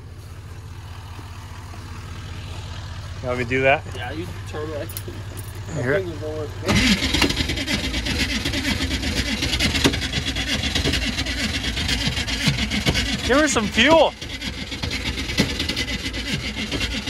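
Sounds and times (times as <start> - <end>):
low engine hum: 0.0 - 17.0
electric starter cranking engine: 3.9 - 17.0.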